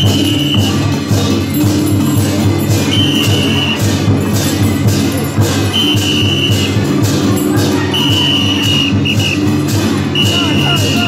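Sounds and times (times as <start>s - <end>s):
cymbal clashes: 0.0s - 11.0s
drum beats: 0.0s - 11.0s.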